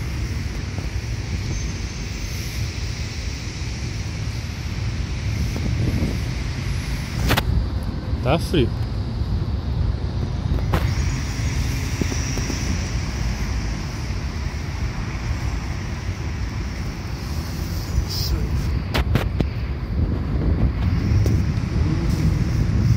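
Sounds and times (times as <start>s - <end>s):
low rumble of city traffic: 0.0s - 22.9s
wind buffeting microphone: 0.0s - 22.9s.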